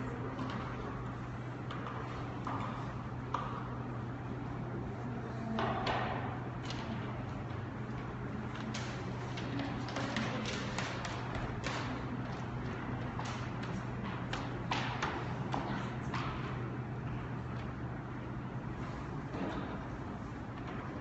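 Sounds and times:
steady low hum: 0:00.0 - 0:21.0
irregular taps and knocks: 0:05.6 - 0:18.2.

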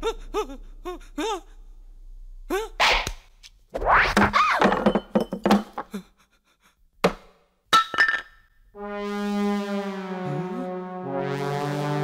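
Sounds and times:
slapstick thuds and knocks: 0:07.0 - 0:07.4
held brass chord: 0:08.8 - 0:12.0.

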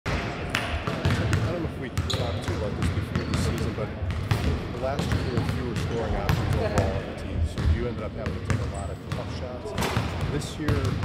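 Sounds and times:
players' voices: 0:00.6 - 0:11.0
basketballs bouncing on hardwood: 0:00.8 - 0:02.1, 0:02.7 - 0:06.7.

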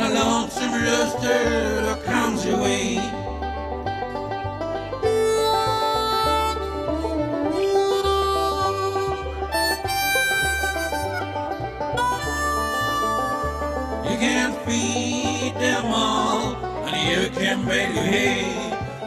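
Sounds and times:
lead instrument holding long notes: 0:04.7 - 0:15.5.

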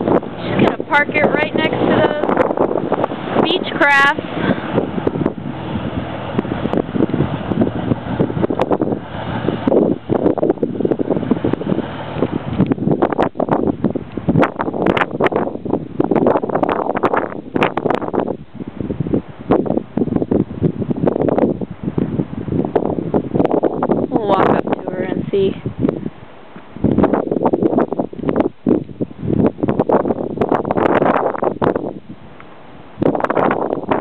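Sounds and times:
wind buffeting microphone: 0:00.0 - 0:34.0.

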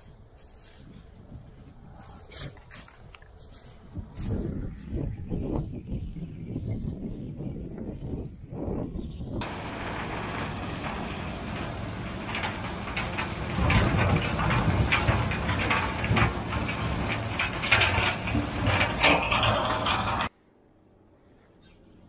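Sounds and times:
engine and rotor drone: 0:09.4 - 0:22.0.

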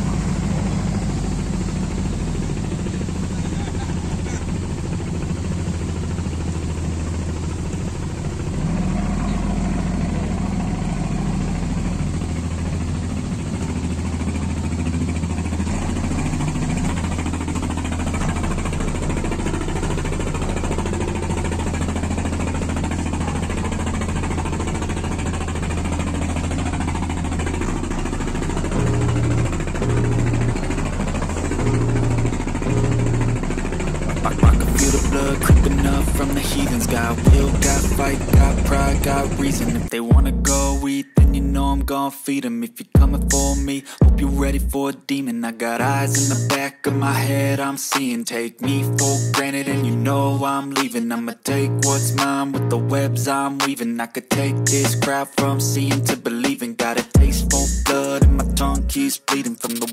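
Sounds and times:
boat engines running: 0:00.0 - 0:41.9, 0:43.0 - 0:44.8, 0:45.8 - 0:48.1, 0:48.7 - 0:59.9
low music beat: 0:27.6 - 0:41.9, 0:43.0 - 0:44.8, 0:45.9 - 0:47.2, 0:48.7 - 0:50.1, 0:51.5 - 0:53.7, 0:54.3 - 0:59.9.

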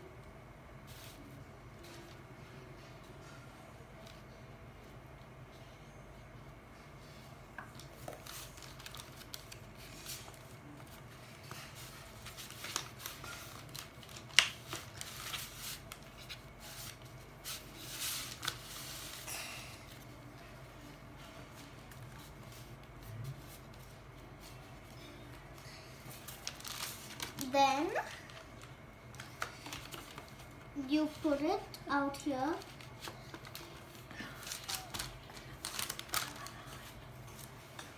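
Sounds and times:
paper rustling and tapping: 0:11.4 - 0:17.0.

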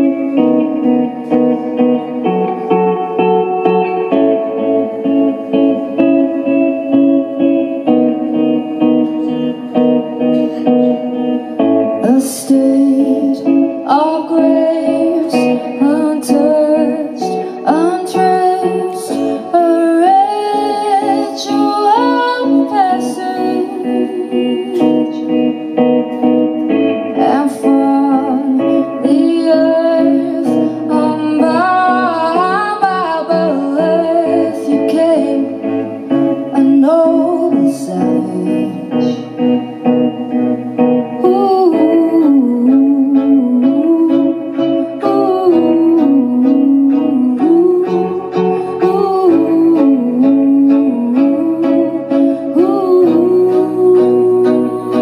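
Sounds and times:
band with strings: 0:00.0 - 0:55.0
woman singing into microphone: 0:00.0 - 0:55.0.

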